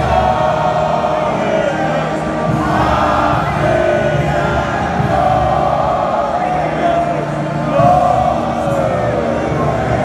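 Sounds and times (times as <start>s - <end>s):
stadium crowd singing: 0.0s - 10.0s.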